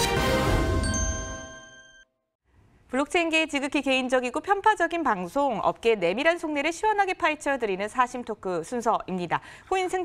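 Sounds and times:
theme music: 0.0s - 1.8s
bright chime ringing: 0.8s - 2.1s.

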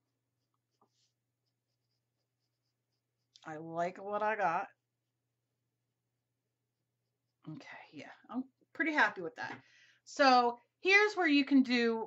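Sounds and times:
woman's voice: 3.4s - 4.8s, 7.5s - 12.0s.

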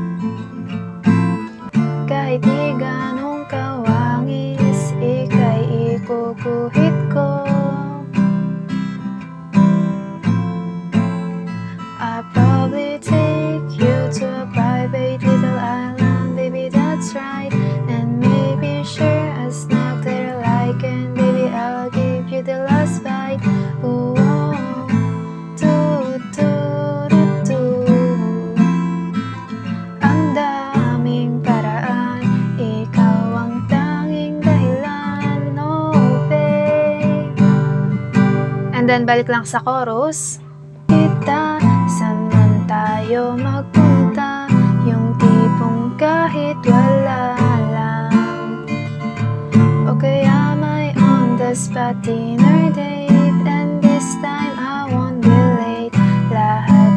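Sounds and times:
acoustic guitar strumming: 0.0s - 56.9s.

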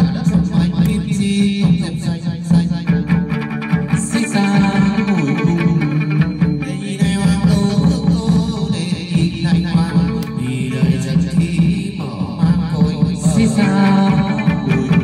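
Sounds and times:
plucked lute melody: 2.9s - 7.2s.

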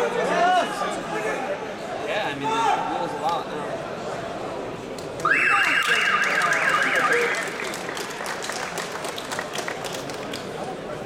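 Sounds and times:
people clapping: 5.0s - 11.0s.

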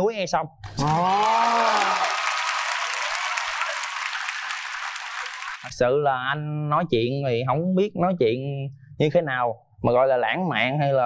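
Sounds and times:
audience applauding: 0.7s - 5.7s.

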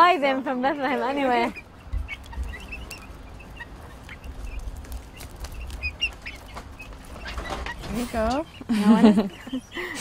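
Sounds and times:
chickens clucking and chirping: 0.0s - 10.0s.

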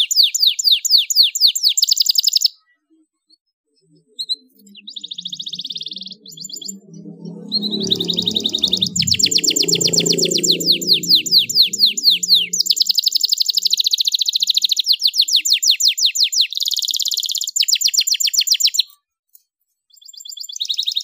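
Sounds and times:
canary singing: 0.0s - 2.6s, 3.8s - 18.9s.

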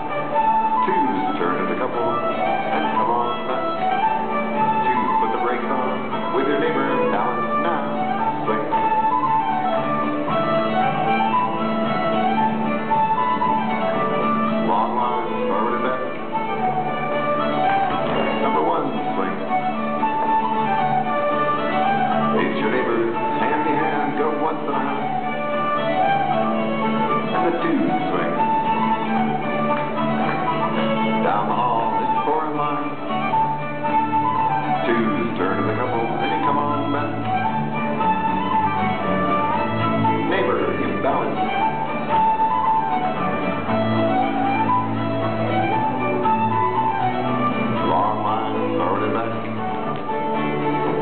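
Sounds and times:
fiddle melody: 0.0s - 51.0s
folk dance band playing: 0.0s - 51.0s
plucked strings: 0.0s - 51.0s.

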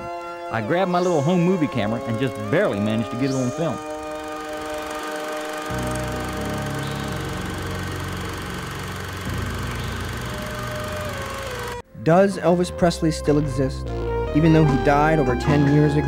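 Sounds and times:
eerie synthesizer chord: 0.0s - 11.8s
film projector motor whirring: 1.8s - 11.8s.

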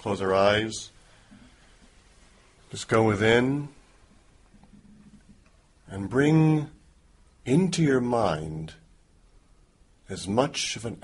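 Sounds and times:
man speaking: 0.0s - 1.0s, 2.6s - 3.9s, 5.8s - 6.8s, 7.4s - 8.9s, 10.0s - 11.0s.

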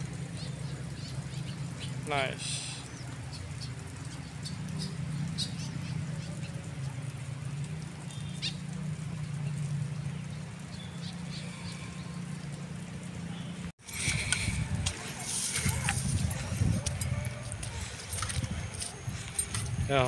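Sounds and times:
faint distant voices: 13.1s - 20.0s
wind rumbling on microphone: 13.8s - 20.0s.

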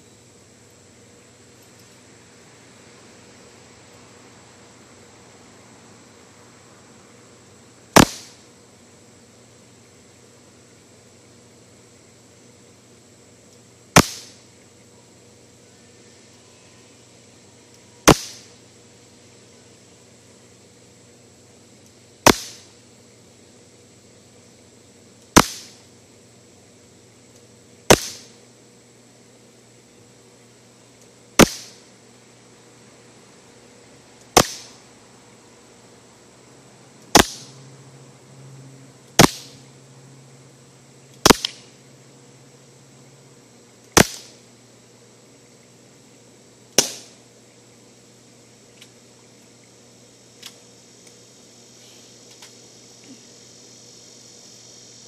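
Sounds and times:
bb pistol shots: 8.0s - 8.4s, 14.0s - 14.4s, 18.1s - 18.5s, 22.2s - 22.6s, 25.4s - 25.8s, 27.9s - 28.3s, 31.4s - 31.8s, 34.4s - 34.8s, 37.1s - 37.5s, 39.2s - 39.6s, 41.2s - 41.7s, 44.0s - 44.4s, 46.8s - 47.2s.

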